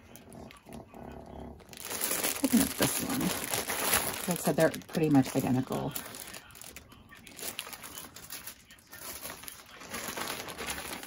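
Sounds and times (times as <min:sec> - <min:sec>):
plastic bag crinkling: 0:00.7 - 0:11.0.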